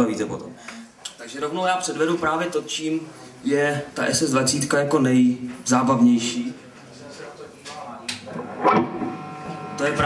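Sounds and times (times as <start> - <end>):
low background noise: 0.0 - 10.0.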